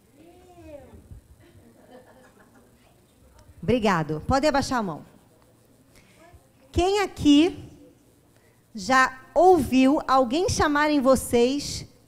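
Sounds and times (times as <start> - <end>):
low murmur of voices: 5.0 - 6.8.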